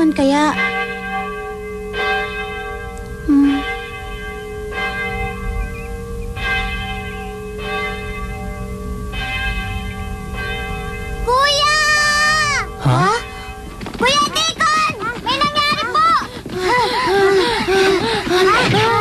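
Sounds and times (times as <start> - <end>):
church bell tolling: 0.0 - 15.3, 17.5 - 19.0.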